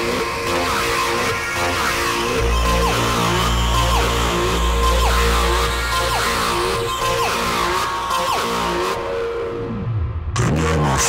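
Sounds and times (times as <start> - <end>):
gliding low synth tones: 0.0 - 10.7
slow electronic track: 0.0 - 11.0.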